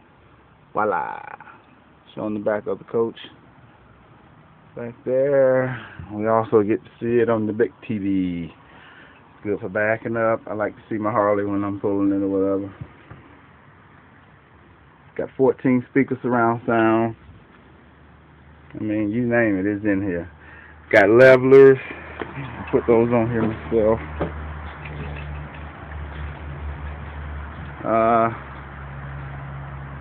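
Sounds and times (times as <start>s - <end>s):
outdoor noise: 0.0s - 30.0s
low engine hum: 21.6s - 30.0s.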